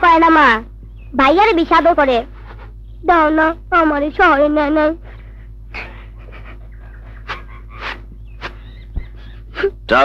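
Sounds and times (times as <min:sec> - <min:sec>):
low soundtrack hum: 0:00.0 - 0:10.0.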